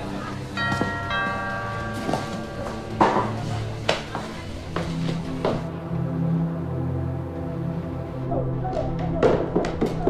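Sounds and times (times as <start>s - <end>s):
quiet background music: 0.0s - 10.0s
bell-like chime notes: 0.5s - 3.8s.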